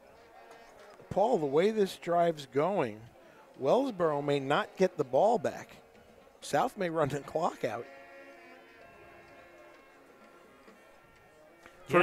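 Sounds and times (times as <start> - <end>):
faint music with held notes: 0.0 - 12.0.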